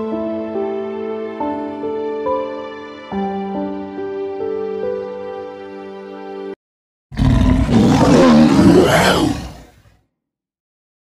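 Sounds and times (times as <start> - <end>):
background music: 0.0 - 6.6
lion roaring: 7.1 - 10.0.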